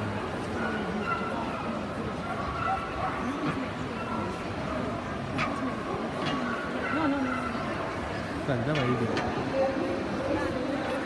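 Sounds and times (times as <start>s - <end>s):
murmur of many voices: 0.0s - 11.0s.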